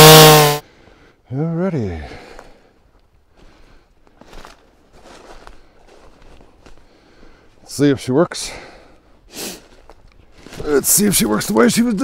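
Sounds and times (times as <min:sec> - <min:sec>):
footsteps through dry leaves: 0:04.1 - 0:06.9, 0:09.6 - 0:11.5.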